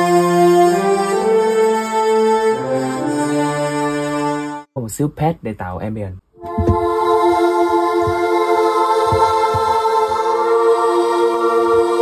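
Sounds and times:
brass section playing chords: 0.0 - 4.7.

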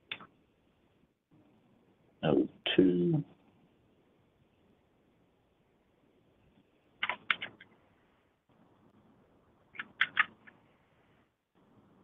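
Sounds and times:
computer keyboard and mouse clicks: 7.0 - 7.7, 9.7 - 10.6.

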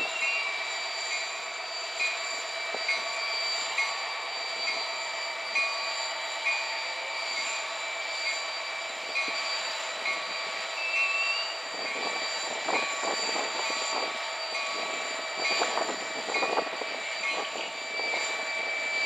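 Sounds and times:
freight train rolling past: 0.0 - 19.0
high-pitched wheel squeal: 0.0 - 19.0.

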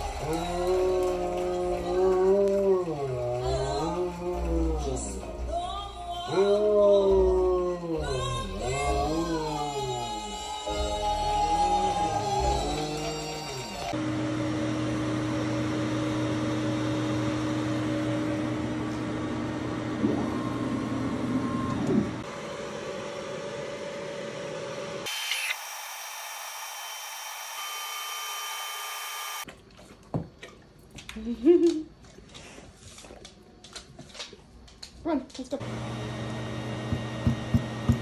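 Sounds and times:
laser engraver humming: 25.1 - 29.4.

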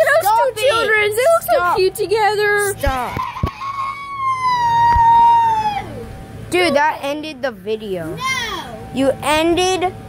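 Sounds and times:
child shrieking: 3.0 - 6.0, 8.2 - 8.7.

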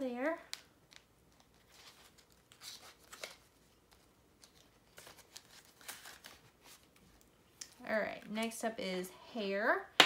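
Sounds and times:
plastic envelopes crinkling: 0.5 - 7.8
paper banknotes rustling: 1.3 - 7.0.

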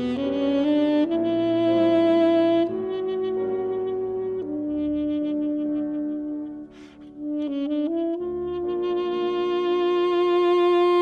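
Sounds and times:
grand piano accompaniment: 0.0 - 11.0
saxophone melody: 0.0 - 11.0.

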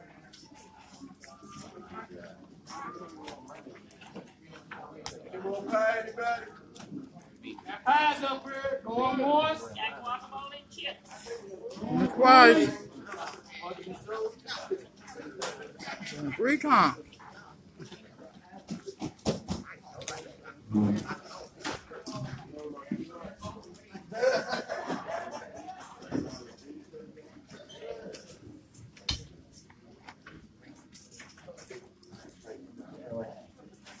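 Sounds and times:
background chatter: 0.0 - 34.0
murmuring voices: 0.0 - 34.0
person calling out: 16.4 - 16.9.

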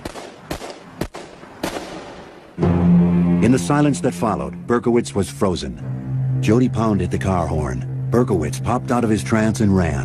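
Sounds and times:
low sustained music tone: 2.6 - 10.0.

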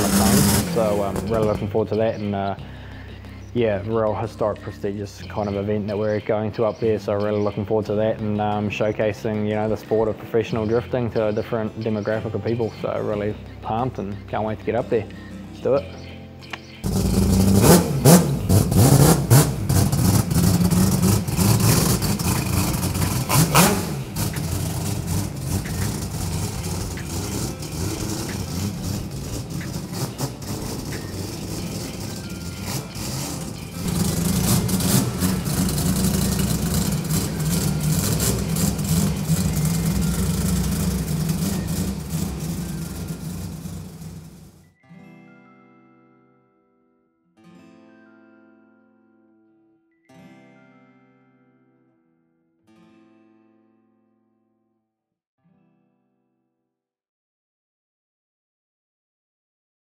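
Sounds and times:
rotary engine revving: 0.0 - 1.8, 16.8 - 44.6
music: 0.0 - 56.7.

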